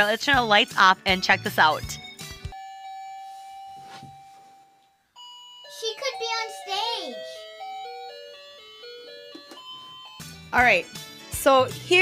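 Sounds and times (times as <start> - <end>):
toy electronic chime melody: 2.5 - 3.8, 5.2 - 10.7.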